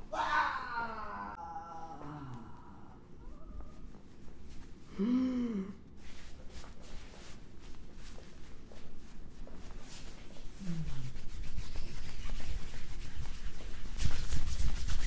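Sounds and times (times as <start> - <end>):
man groaning: 0.1 - 3.0, 4.9 - 5.8
fabric rubbing: 3.2 - 4.9, 6.0 - 15.0.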